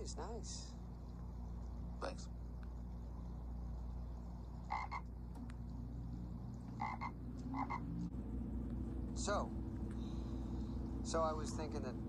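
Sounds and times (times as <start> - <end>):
low hum: 0.0 - 12.0
frog croaking: 4.4 - 5.3, 6.6 - 8.1.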